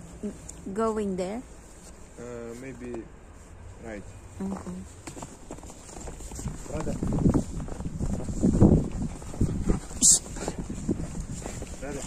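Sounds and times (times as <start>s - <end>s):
footsteps crunching in snow: 1.5s - 12.0s.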